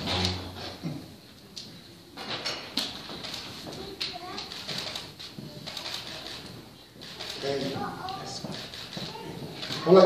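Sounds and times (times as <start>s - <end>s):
faint voices murmuring and whispering: 3.0s - 10.0s.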